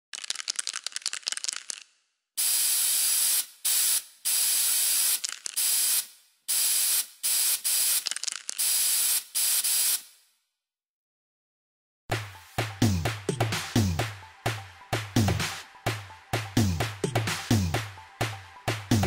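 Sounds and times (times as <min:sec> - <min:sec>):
spray can rattling: 0:00.1 - 0:10.2
spray can hissing bursts: 0:02.4 - 0:10.3.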